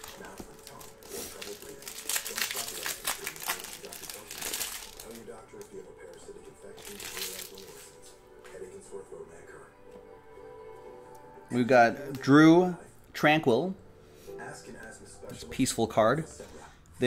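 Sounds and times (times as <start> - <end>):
foil wrapper crinkling: 0.0 - 5.8, 6.8 - 7.9.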